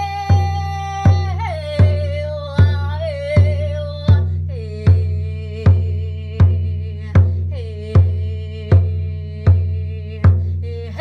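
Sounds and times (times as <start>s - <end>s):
frame drum beat: 0.0s - 11.0s
woman singing wordless cry: 0.0s - 11.0s.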